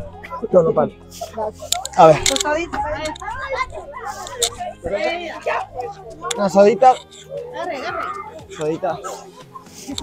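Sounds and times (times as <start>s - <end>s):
other voices: 0.0s - 10.0s.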